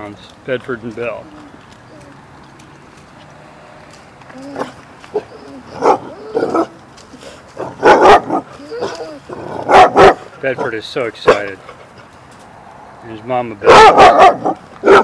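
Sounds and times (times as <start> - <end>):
dogs barking: 4.4 - 6.8, 7.5 - 12.1, 13.6 - 15.0.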